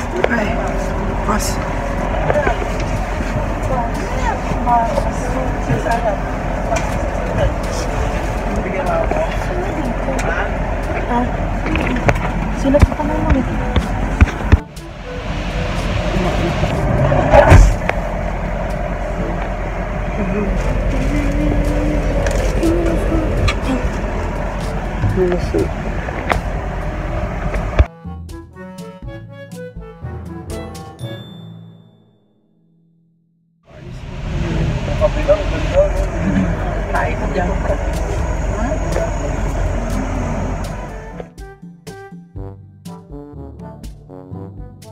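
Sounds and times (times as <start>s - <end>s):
car cabin rumble: 0.0s - 27.9s, 33.7s - 41.4s
indistinct passenger voices: 0.0s - 27.9s, 33.7s - 41.4s
loud bump: 15.4s - 18.5s.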